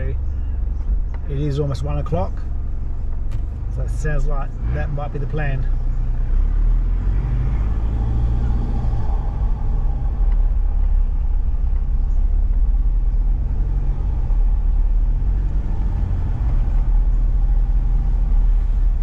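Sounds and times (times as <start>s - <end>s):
vehicle rumble on dirt road: 0.0s - 19.0s.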